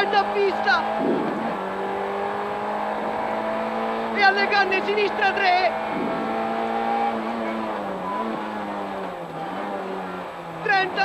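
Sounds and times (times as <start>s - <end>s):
rally car engine running hard: 0.0s - 11.0s.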